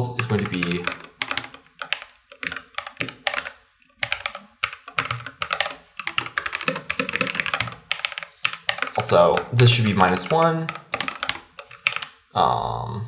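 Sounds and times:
computer keyboard typing: 0.0s - 12.3s.

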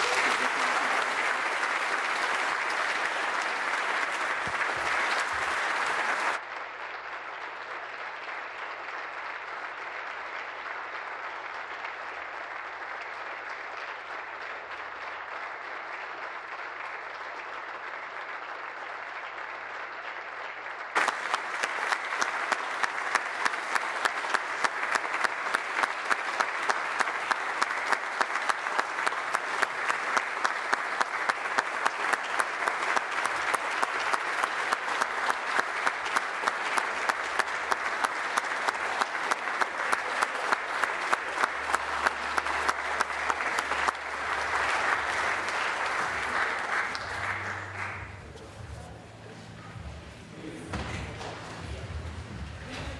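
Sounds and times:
rhythmic clapping beat: 0.0s - 7.4s, 11.2s - 48.5s
crowd applauding: 0.0s - 52.9s.

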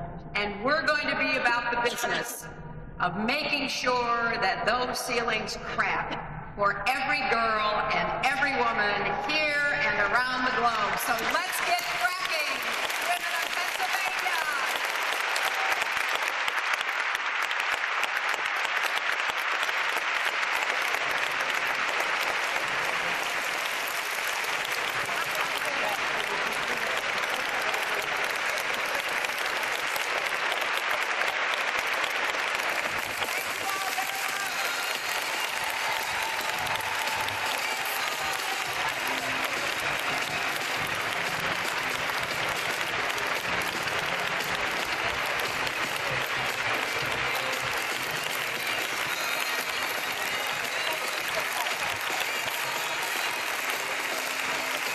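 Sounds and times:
audience applauding: 10.8s - 54.9s.

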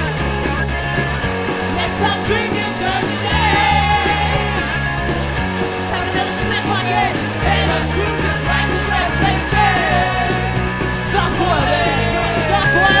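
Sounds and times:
punk rock band playing: 0.0s - 13.0s.

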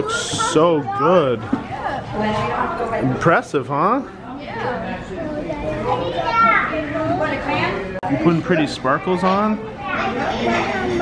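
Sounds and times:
children and adults chattering: 0.0s - 11.0s.

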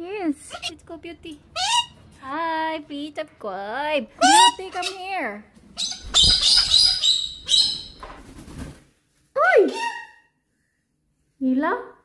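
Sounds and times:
cockatoo high-pitched calls: 1.6s - 2.0s, 5.8s - 8.0s, 9.6s - 10.4s.

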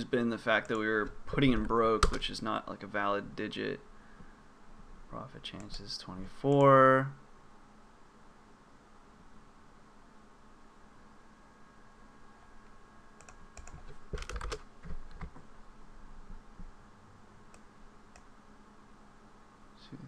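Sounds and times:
faint steady hum: 0.0s - 20.0s
keyboard key presses: 13.2s - 15.4s.

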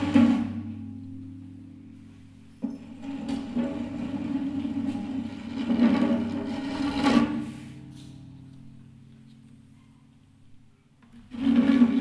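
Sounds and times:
low hum of guitar body: 0.0s - 12.0s
guitar headstock scraping floor: 2.5s - 8.3s.

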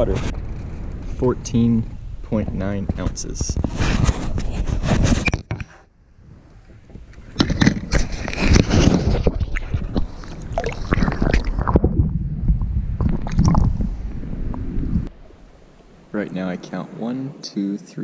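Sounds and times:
knocks and scrapes against hull: 0.0s - 15.9s
water sloshing and gurgling: 6.2s - 17.0s.

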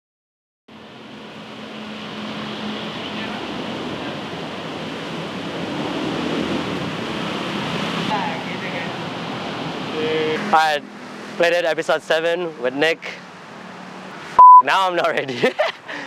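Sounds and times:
street traffic: 0.7s - 16.0s.

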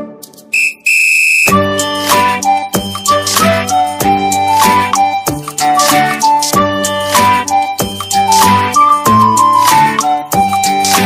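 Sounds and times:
high steady whistle: 0.5s - 1.6s.

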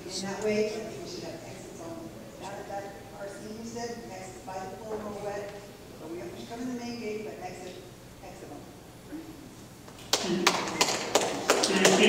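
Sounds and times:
person's voice: 0.0s - 8.6s.

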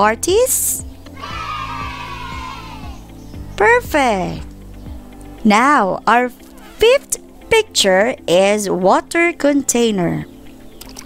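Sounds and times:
background music with steady beat: 0.0s - 11.0s
children cheering: 1.2s - 3.1s.

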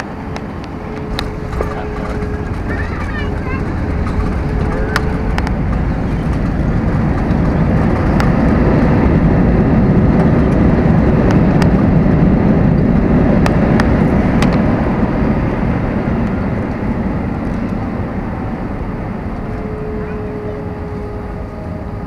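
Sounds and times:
jet engines and wheels rumbling: 0.0s - 22.0s.

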